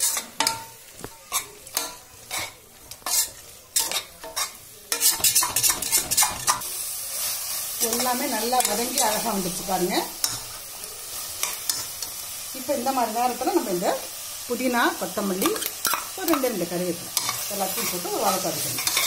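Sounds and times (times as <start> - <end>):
metal spatula scraping a pot: 0.0 - 6.6
frying sizzle: 0.0 - 19.0.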